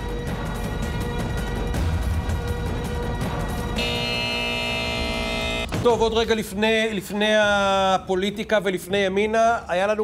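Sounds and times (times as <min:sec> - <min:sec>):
tv theme music: 0:00.0 - 0:08.2.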